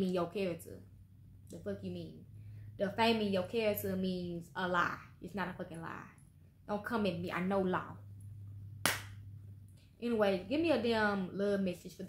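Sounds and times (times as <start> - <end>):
faint low hum: 0.0 - 12.0
sharp smack: 8.8 - 9.2.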